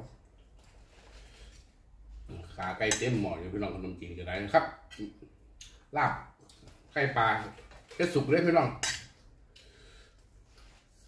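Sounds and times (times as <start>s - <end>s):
metal spoons clinking on plates: 8.8s - 9.2s.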